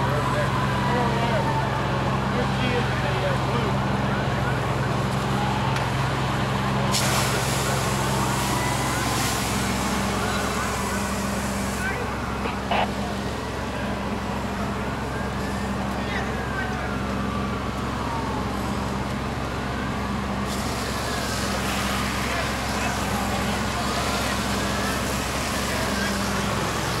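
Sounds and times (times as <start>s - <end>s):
siren wailing: 0.0s - 6.9s, 7.6s - 27.0s
fire engine droning: 0.0s - 27.0s
hose spraying water: 6.9s - 12.9s, 20.4s - 27.0s.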